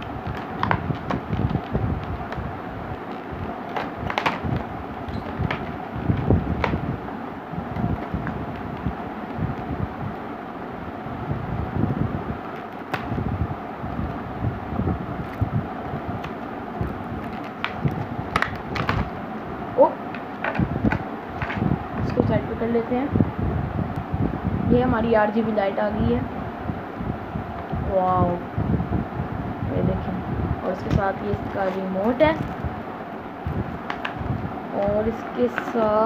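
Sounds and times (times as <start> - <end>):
plastic crackling and snapping: 0.0 - 7.0, 7.7 - 10.3, 12.4 - 13.2, 15.2 - 19.2, 20.0 - 22.2, 30.8 - 32.8, 33.4 - 36.0.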